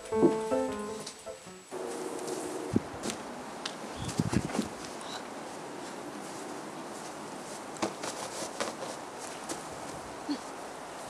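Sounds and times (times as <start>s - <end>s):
steady background hiss: 0.0s - 11.0s
footsteps crunching in snow: 1.8s - 3.3s, 3.9s - 10.1s.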